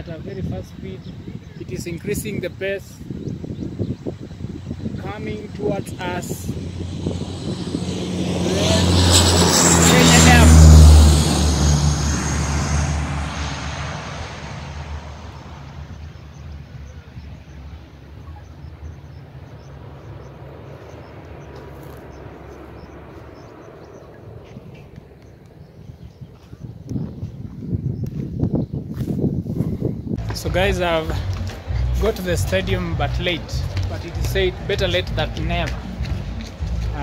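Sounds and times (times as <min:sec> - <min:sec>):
turboprop plane taking off: 0:00.0 - 0:37.0
rustling on microphone: 0:26.3 - 0:30.3.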